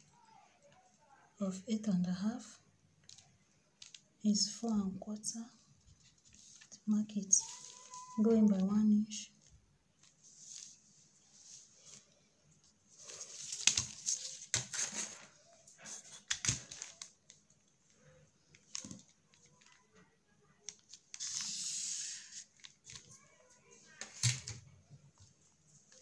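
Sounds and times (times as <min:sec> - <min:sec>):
paper rustling and crinkling: 0:03.0 - 0:04.1, 0:05.8 - 0:08.4, 0:09.4 - 0:19.9, 0:20.6 - 0:26.0.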